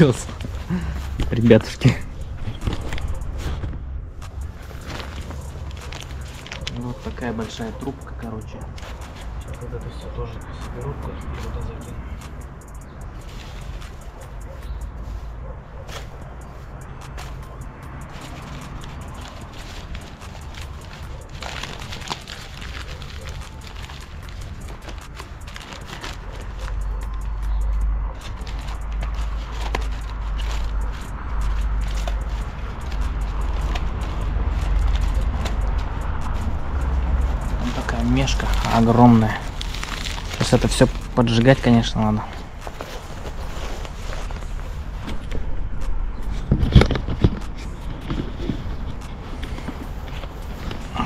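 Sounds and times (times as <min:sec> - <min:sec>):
newspaper crinkling: 0:00.0 - 0:09.6, 0:11.1 - 0:45.6, 0:46.2 - 0:51.0.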